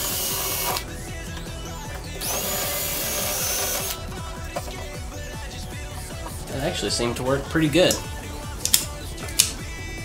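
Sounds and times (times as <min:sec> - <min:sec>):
drill whining through plastic: 0:00.0 - 0:06.4
background music with steady beat: 0:00.0 - 0:10.0.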